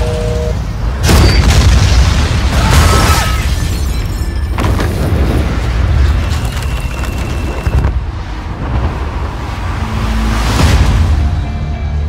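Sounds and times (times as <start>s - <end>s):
explosion with deep rumble: 1.0s - 3.3s
crackling debris: 1.0s - 9.3s.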